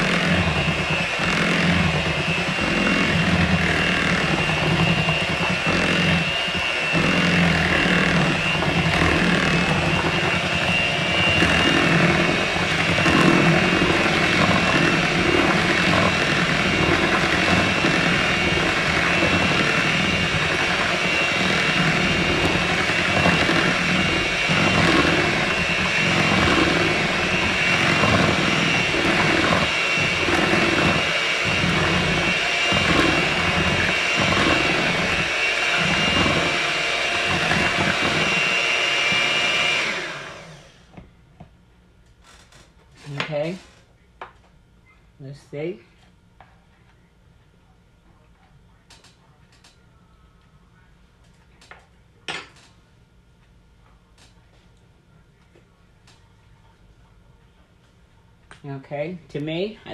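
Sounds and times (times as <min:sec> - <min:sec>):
electric hand mixer whining: 0:00.0 - 0:41.0.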